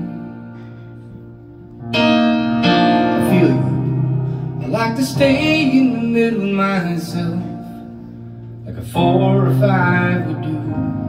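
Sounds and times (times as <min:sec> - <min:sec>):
electric keyboard chords: 0:00.0 - 0:11.0.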